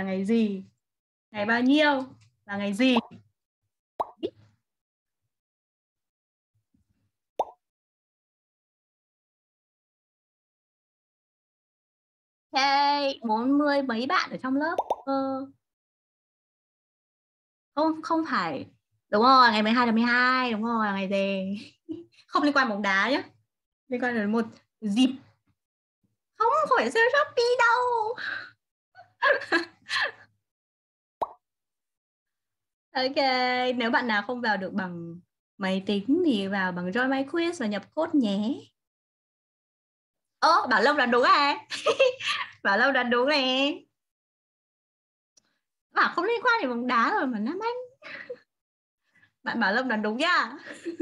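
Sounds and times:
digital pop sound effects: 2.9 - 3.3, 7.4 - 7.7, 14.8 - 15.1
pop with rising tone: 4.0 - 4.3, 7.4 - 7.7, 14.8 - 15.1, 31.2 - 31.4
woman talking and laughing: 21.4 - 22.6, 29.0 - 30.3, 41.6 - 42.9, 47.8 - 48.5, 50.3 - 51.0.

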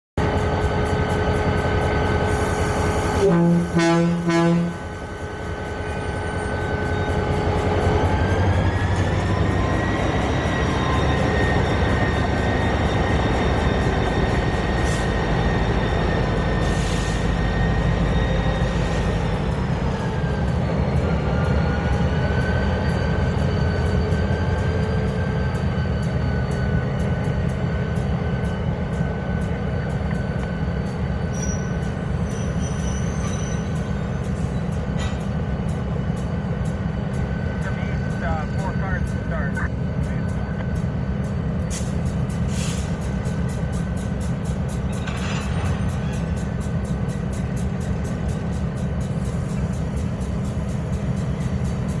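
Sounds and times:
diesel locomotive engine rumble: 0.1 - 52.0.

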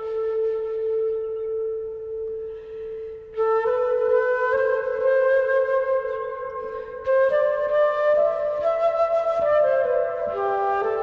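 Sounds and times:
flute holding a note: 0.0 - 11.0
soft airy hiss: 0.7 - 5.1.

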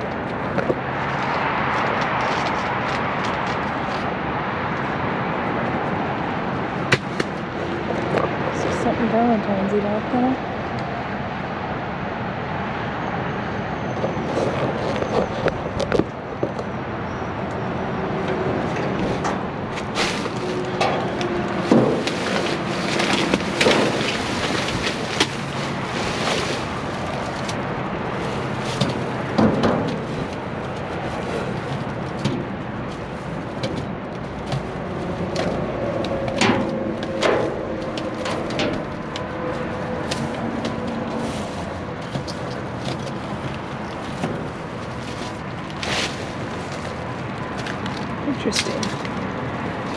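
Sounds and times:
steady background hum: 0.0 - 49.9
plastic bags rustling: 18.1 - 49.9
sharp crackles and knocks: 18.2 - 49.9.

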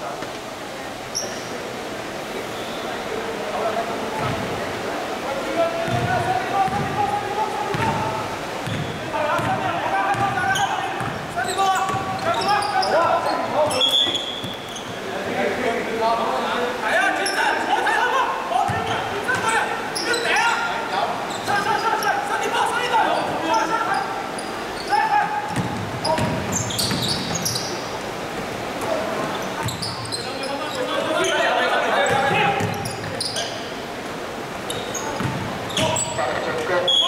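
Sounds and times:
basketball bouncing on hardwood: 5.8 - 6.1, 6.7 - 7.0, 8.6 - 10.4, 25.5 - 27.4, 32.1 - 32.8, 35.2 - 35.5.

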